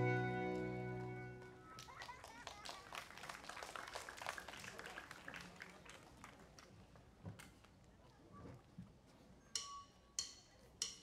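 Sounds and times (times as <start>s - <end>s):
audience applause: 0.5s - 6.7s.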